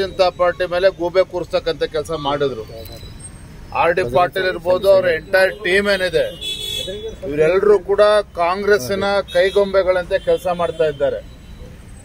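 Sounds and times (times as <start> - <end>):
man speaking into microphone: 3.7 - 11.3.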